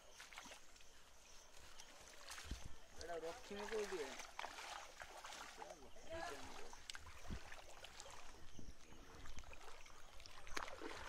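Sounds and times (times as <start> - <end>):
floodwater sloshing and splashing: 0.0 - 11.0.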